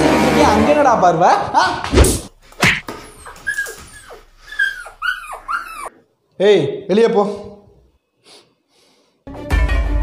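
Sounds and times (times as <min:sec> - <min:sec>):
dog whimpering: 0:03.0 - 0:06.0.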